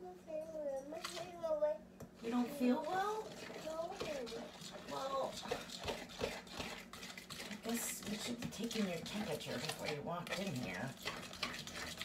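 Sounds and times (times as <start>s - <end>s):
child making wordless sounds: 0.0s - 1.9s, 2.8s - 5.4s
faint steady hum: 0.0s - 12.0s
fork stirring batter in bowl: 2.2s - 12.0s.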